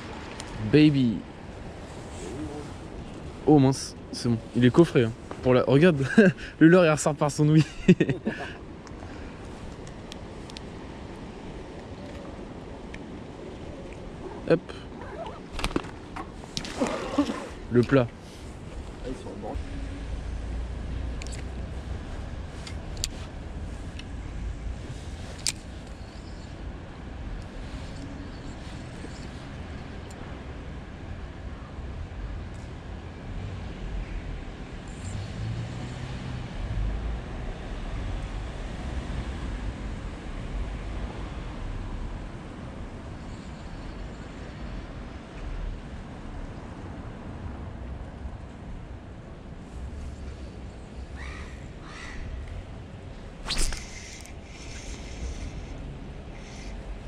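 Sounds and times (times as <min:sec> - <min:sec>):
city traffic rumble: 0:00.0 - 0:57.0.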